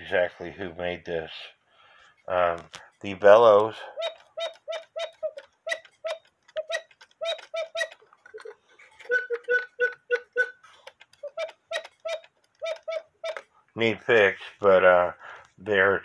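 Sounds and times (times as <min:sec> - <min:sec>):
clock ticking with ring: 0:03.8 - 0:13.4.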